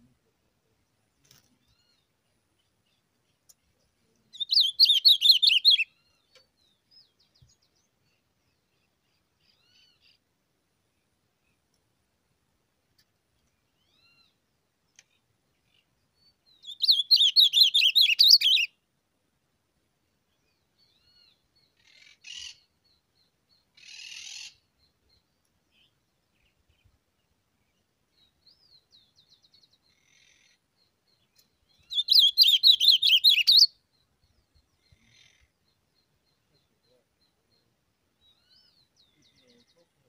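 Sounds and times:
songbird warbling: 4.3s - 5.9s, 16.6s - 18.7s, 31.7s - 33.7s
bird chirps and calls: 4.3s - 10.2s, 13.8s - 18.7s, 20.4s - 27.0s, 28.2s - 40.0s.

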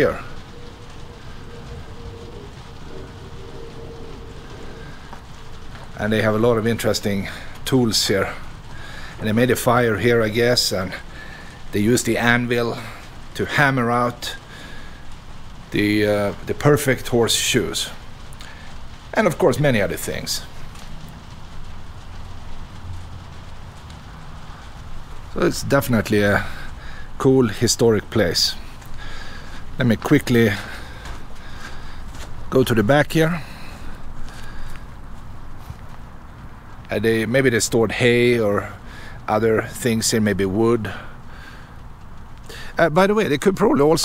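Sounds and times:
faint hiss: 0.0s - 44.0s
rain on a wooden roof: 0.0s - 44.0s
steady low rumble: 0.0s - 44.0s.

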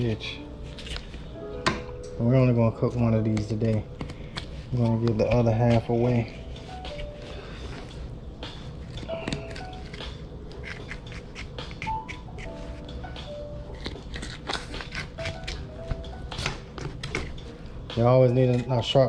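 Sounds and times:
soft jazz music: 0.0s - 19.0s
knife cracking through fish bones: 13.8s - 15.7s.

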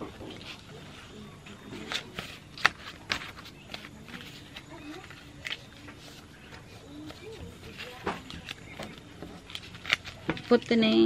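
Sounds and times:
faint voices: 0.0s - 11.0s
banknotes rustling and snapping: 0.1s - 11.0s.

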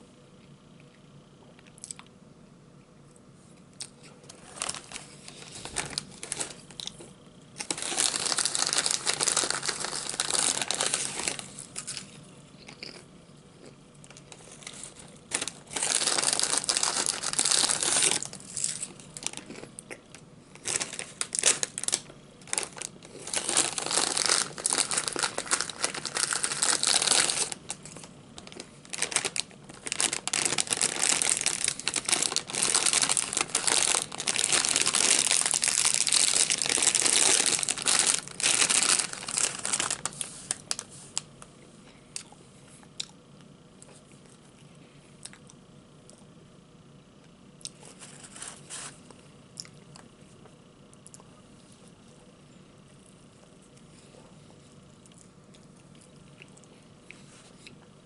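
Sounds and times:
foil chip bag crinkling: 4.2s - 13.0s, 13.6s - 41.3s, 47.7s - 49.0s.

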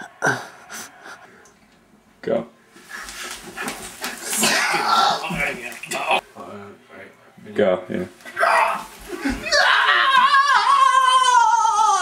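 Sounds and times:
person's strained whining cries: 8.4s - 12.0s.

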